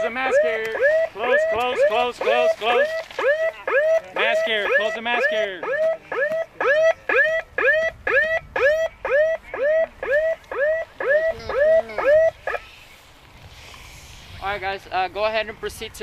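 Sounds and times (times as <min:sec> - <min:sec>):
man calling out: 0:00.0 - 0:06.0, 0:11.1 - 0:12.3.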